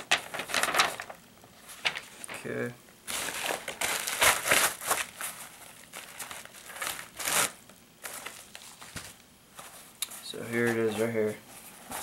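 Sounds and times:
plastic bag crinkling and rustling: 0.0 - 10.0.

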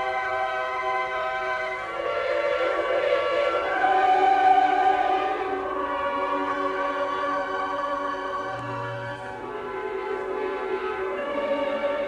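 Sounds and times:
choir and orchestra sustained chords: 0.0 - 12.0.

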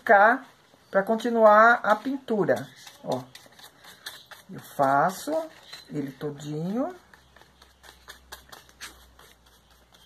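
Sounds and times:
brush knocking paint jar: 1.9 - 10.0
paintbrush taps and scratches: 1.9 - 10.0.

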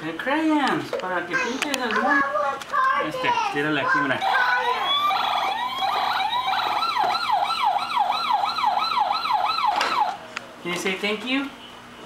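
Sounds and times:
toy electronic tones: 4.2 - 7.5
rapid wailing toy siren: 4.2 - 10.2.

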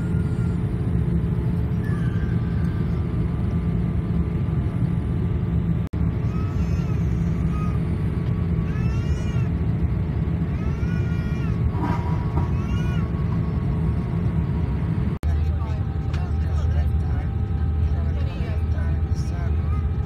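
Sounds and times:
airplane cabin roar in flight: 0.0 - 20.0.

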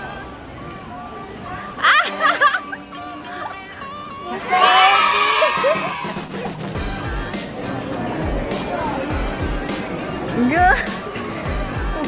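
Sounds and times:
background music with steady beat: 2.0 - 12.0.

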